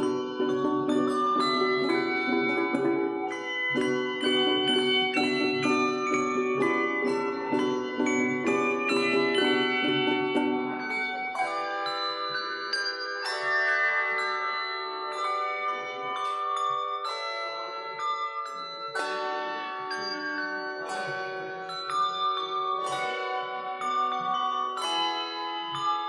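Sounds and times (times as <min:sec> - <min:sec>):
handbell choir ringing: 0:00.0 - 0:26.0.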